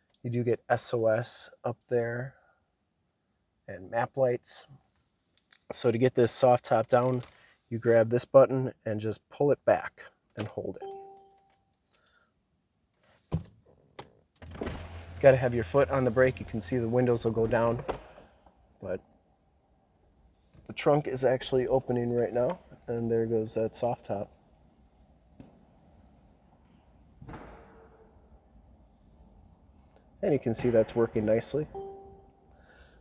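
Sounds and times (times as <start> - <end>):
thump: 13.3 - 13.5, 14.4 - 15.1, 17.4 - 18.3, 27.2 - 28.0
short electronic chime: 31.8 - 32.4.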